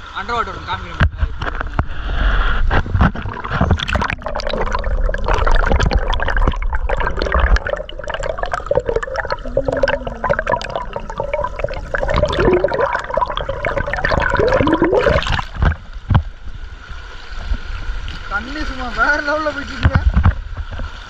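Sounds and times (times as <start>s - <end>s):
water rapids: 0.2s - 16.0s
underwater churning and gurgling: 1.2s - 16.6s
bubble clicks: 2.8s - 15.8s.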